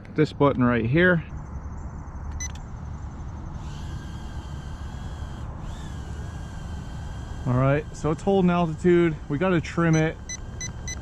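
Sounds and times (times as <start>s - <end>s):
steady low rumble: 1.2s - 11.0s
drone motors high whine: 2.2s - 11.0s.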